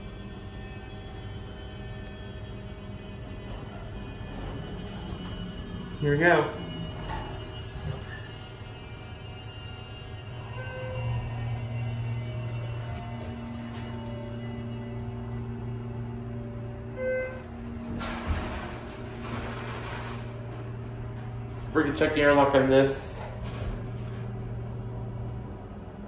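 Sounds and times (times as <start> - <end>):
elevator doors sliding open: 0.0 - 26.0
elevator pump motor humming: 0.0 - 26.0.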